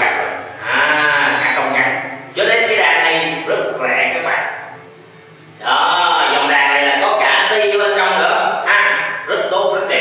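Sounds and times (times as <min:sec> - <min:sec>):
man speaking drawn-out syllable: 0:00.0 - 0:04.8, 0:05.6 - 0:10.0.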